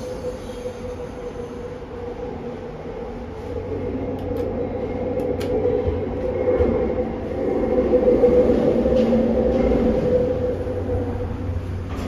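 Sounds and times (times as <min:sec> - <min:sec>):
elevator hum and rumble: 0:00.0 - 0:12.0.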